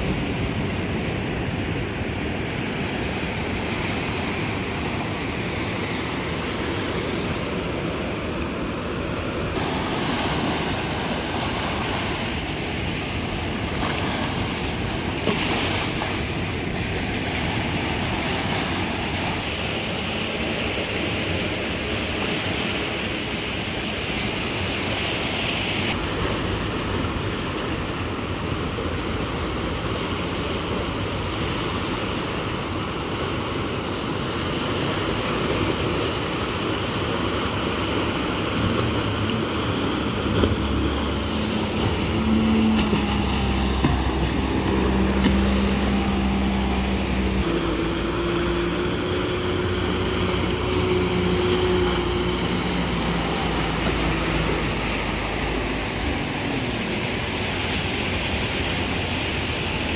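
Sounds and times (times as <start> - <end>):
surf breaking on beach: 0.0 - 59.9
outboard motor running: 35.2 - 59.9.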